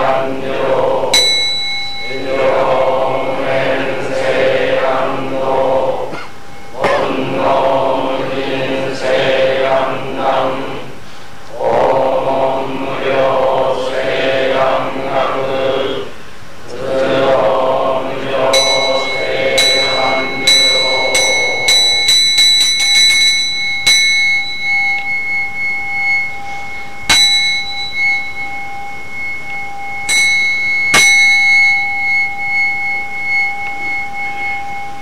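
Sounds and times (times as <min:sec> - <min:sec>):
voices chanting: 0:00.0 - 0:35.0
bowl bell struck: 0:01.1 - 0:04.6, 0:18.5 - 0:35.0.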